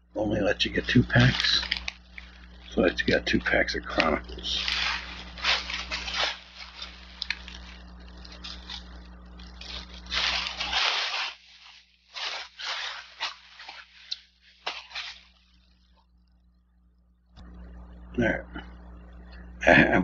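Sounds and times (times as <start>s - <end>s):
plastic bag rustling and crinkling: 0.6s - 16.0s.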